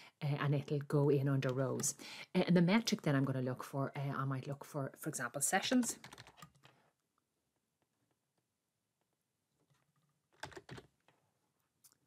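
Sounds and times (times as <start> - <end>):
computer keyboard keystrokes: 6.0 - 6.7, 10.4 - 10.9.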